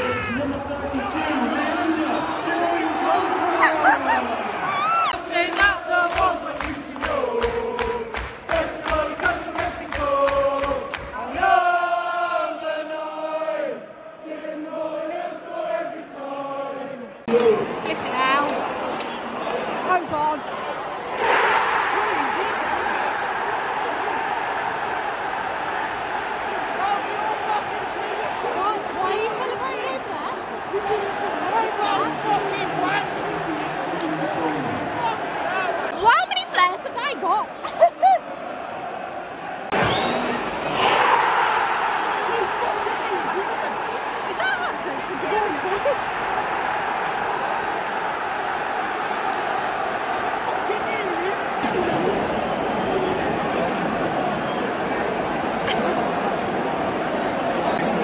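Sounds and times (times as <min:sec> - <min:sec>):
stadium crowd chanting: 0:00.0 - 0:58.0
sharp claps or bangs: 0:05.5 - 0:11.2.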